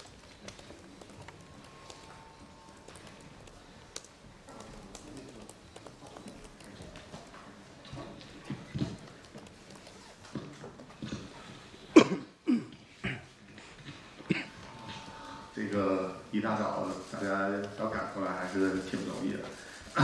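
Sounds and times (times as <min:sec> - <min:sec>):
faint indistinct voices: 0:00.0 - 0:20.0.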